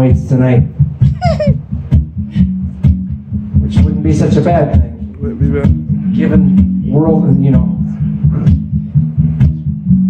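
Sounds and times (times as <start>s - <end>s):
guitar picked pattern: 0.0s - 10.0s.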